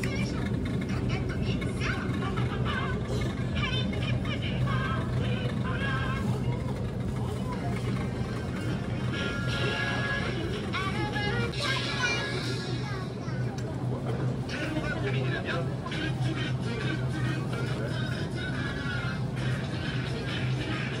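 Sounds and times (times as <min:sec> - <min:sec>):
indistinct voices: 0:00.0 - 0:21.0
steady low hum: 0:00.0 - 0:21.0.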